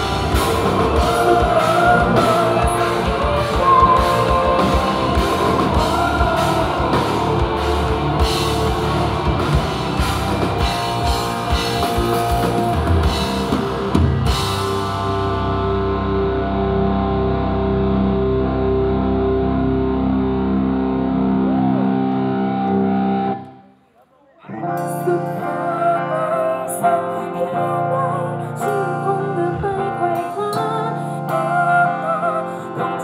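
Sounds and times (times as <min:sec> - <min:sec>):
drum kit: 0:00.0 - 0:16.2
guitar chords ringing: 0:00.0 - 0:23.5.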